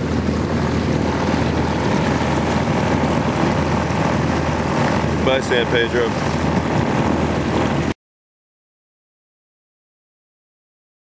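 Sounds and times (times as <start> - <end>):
diesel engine running: 0.0 - 7.9
wind on microphone: 0.0 - 8.0.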